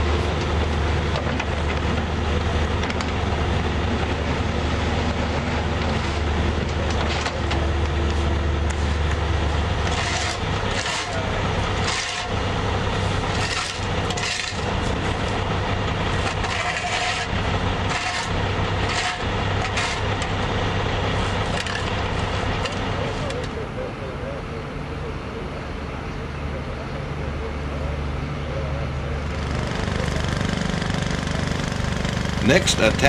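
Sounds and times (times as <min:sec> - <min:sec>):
heavy equipment engines running: 0:00.0 - 0:33.0
shovel and broom scraping gravel: 0:09.9 - 0:12.4, 0:13.0 - 0:15.2, 0:16.1 - 0:20.1.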